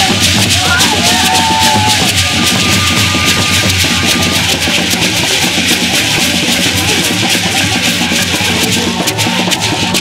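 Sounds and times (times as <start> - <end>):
drumming: 0.0 - 10.0
gourd rattles shaking: 0.0 - 10.0.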